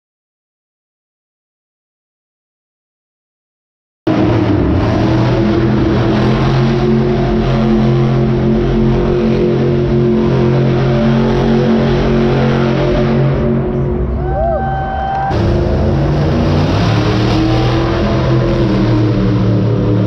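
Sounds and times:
truck engine at high revs: 0:04.1 - 0:14.3, 0:15.2 - 0:20.0.

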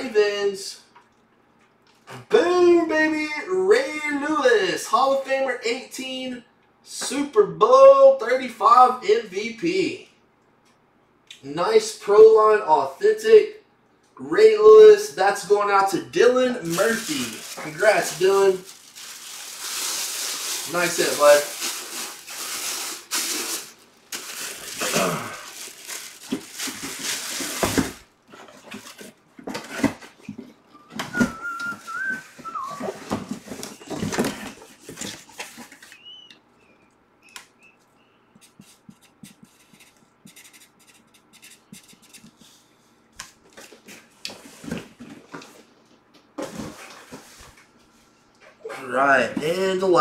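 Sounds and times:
plastic wrapping crinkling: 0:16.6 - 0:29.1
wavering whistle-like tone: 0:30.7 - 0:33.1.

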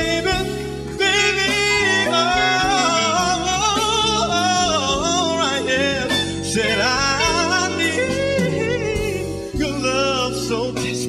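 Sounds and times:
man singing wordless vocal run: 0:00.0 - 0:11.0
sustained instrumental backing: 0:00.0 - 0:11.0.

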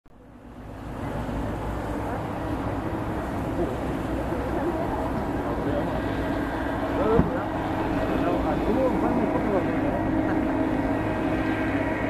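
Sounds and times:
motorboat engines rumbling: 0:00.1 - 0:12.0
people chattering: 0:00.8 - 0:11.2.

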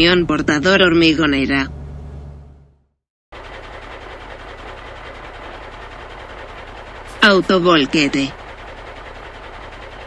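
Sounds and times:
diesel truck engine rattling: 0:00.0 - 0:10.0
low truck engine hum: 0:00.0 - 0:10.0.

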